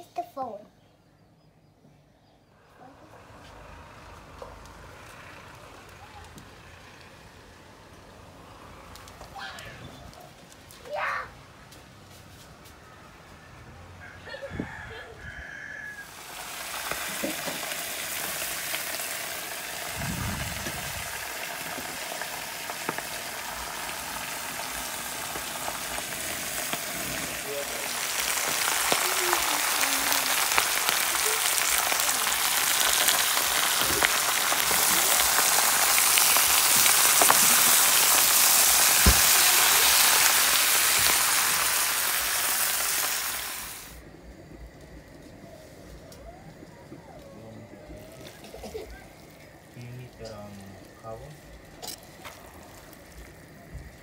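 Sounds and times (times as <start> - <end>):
vegetables sizzling in a pan: 16.0 - 44.0.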